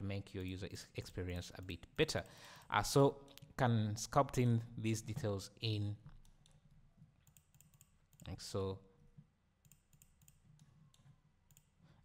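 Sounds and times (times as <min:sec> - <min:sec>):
computer mouse clicks: 0:07.2 - 0:08.3, 0:09.6 - 0:11.8.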